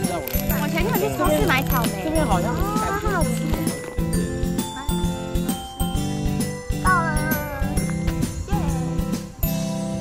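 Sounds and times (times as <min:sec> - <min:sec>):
cheerful background music: 0:00.0 - 0:10.0.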